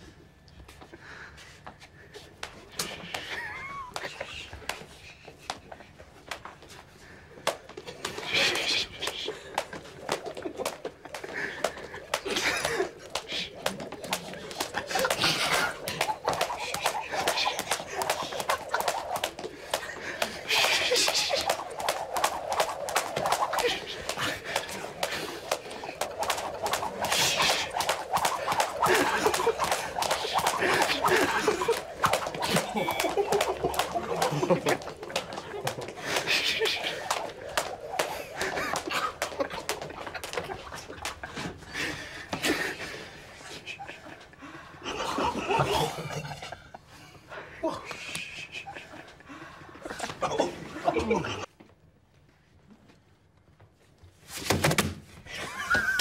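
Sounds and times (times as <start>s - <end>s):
jump rope slapping floor: 2.3s - 43.0s, 54.5s - 56.0s
held-in laughter: 2.7s - 5.8s, 7.4s - 51.5s, 55.3s - 56.0s
hushed voices: 7.9s - 51.5s.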